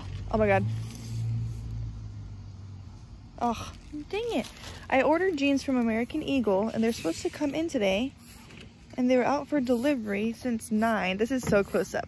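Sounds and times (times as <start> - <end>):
motor vehicle engine rumble: 0.0 - 12.0.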